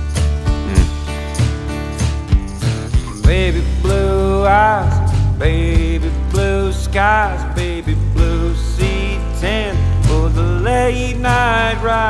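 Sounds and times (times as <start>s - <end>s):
acoustic guitar: 0.0s - 12.0s
man singing: 3.2s - 12.0s.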